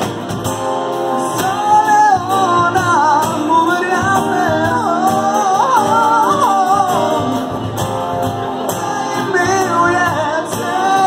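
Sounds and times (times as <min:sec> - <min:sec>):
cajon beat: 0:00.0 - 0:11.0
strummed acoustic guitars: 0:00.0 - 0:11.0.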